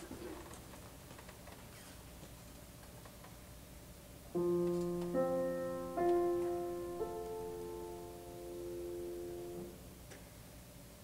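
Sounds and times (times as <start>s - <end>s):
piano chord ringing: 4.3s - 10.0s.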